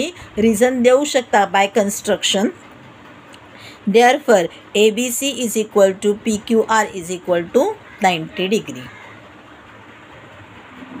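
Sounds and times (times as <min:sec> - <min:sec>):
background hiss and hum: 0:00.0 - 0:11.0.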